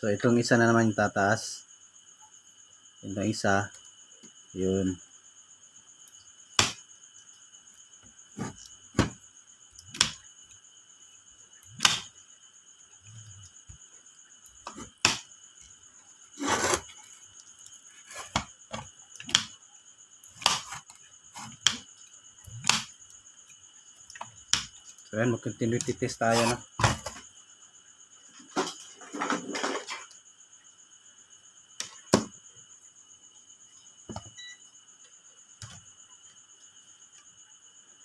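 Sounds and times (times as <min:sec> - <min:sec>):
faint high-pitched tone: 0:34.3 - 0:34.7.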